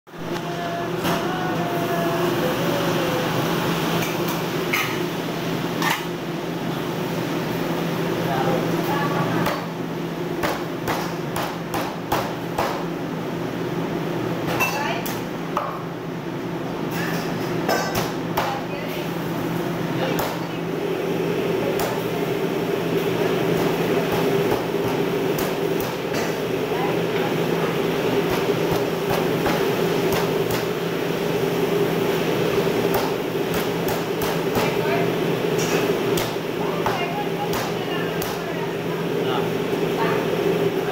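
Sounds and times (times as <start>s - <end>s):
steady machine hum: 0.1s - 40.9s.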